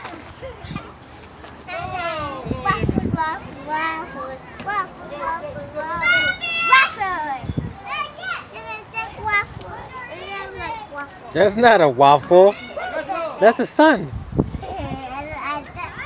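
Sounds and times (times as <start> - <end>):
young child chattering: 14.5 - 16.0.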